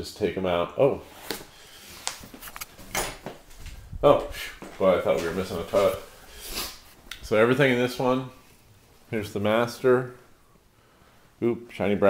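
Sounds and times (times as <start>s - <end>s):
faint clicks and rustles: 1.2s - 7.4s
camera handling noise: 2.0s - 3.0s.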